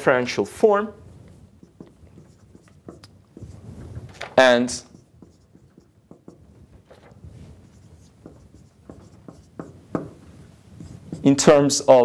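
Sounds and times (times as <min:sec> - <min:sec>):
marker scratching on whiteboard: 0:01.1 - 0:11.7
marker tip tapping board: 0:01.6 - 0:03.6, 0:04.8 - 0:06.5, 0:08.0 - 0:10.2.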